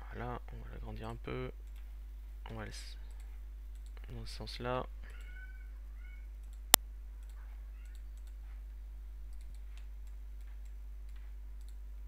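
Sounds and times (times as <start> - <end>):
low electrical hum: 0.0 - 12.0
computer mouse click: 6.4 - 8.4, 9.3 - 11.8.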